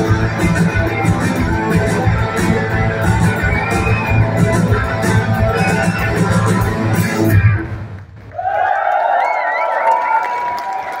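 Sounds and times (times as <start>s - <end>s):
crowd cheering and clapping: 2.0s - 11.0s.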